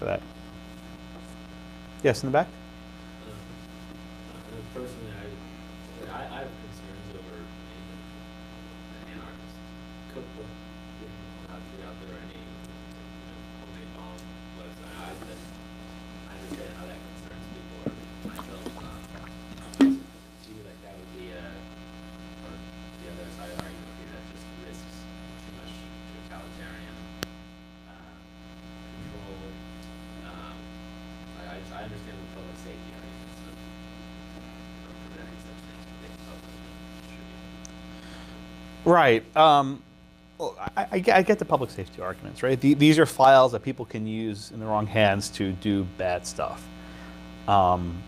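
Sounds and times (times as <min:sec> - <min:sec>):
electrical mains hum: 0:00.0 - 0:48.0.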